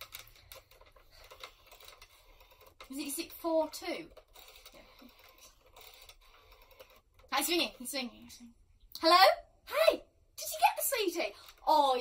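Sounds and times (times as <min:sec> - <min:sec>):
rotary phone dial clicks: 0:00.0 - 0:07.4.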